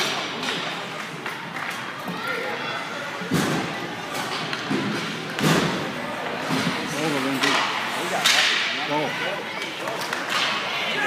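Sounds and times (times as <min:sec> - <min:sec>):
spectators' voices: 0:00.0 - 0:11.0
hockey puck crack: 0:03.2 - 0:08.9, 0:09.6 - 0:11.0.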